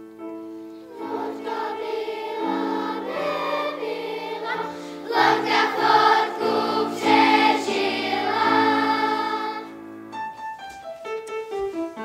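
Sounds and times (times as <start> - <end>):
children's choir singing: 0.8 - 9.8.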